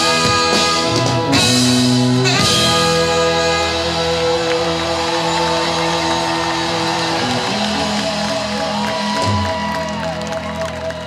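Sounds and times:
rock band sustained chords: 0.0 - 11.0.

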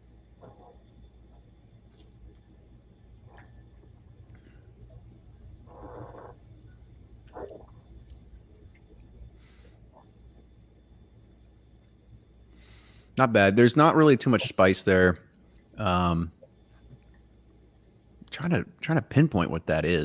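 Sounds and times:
low hum: 0.0 - 18.4.

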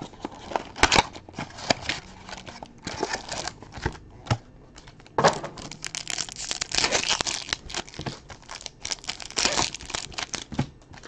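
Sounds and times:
foil wrappers crinkling and tearing: 0.0 - 3.9, 4.8 - 11.0.

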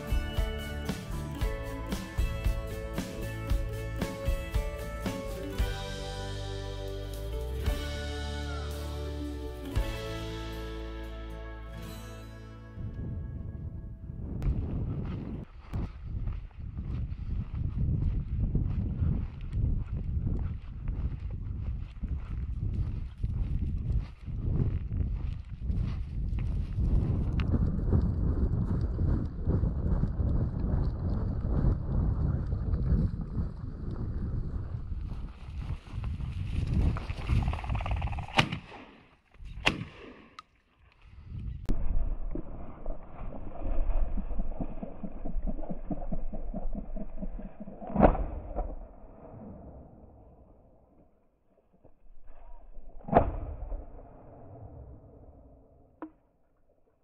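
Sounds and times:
wind rumble on microphone: 12.7 - 38.6, 41.0 - 51.0
footsteps over rocky ground: 14.4 - 29.1, 34.4 - 37.9
shotgun shots: 38.3 - 39.0, 39.6 - 40.4.

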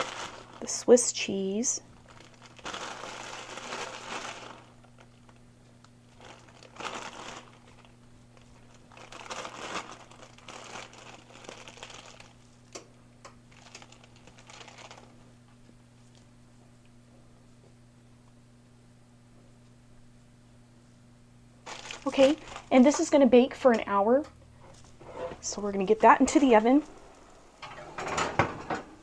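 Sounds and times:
plastic bag crinkling: 0.0 - 5.5, 6.1 - 12.6, 13.5 - 15.2, 21.6 - 23.2.

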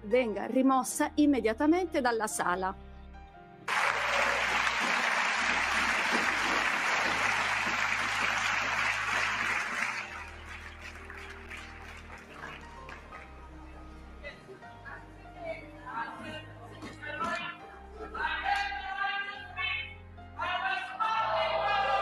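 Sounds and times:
low background music: 0.0 - 22.0
crowd applauding: 3.7 - 13.5.

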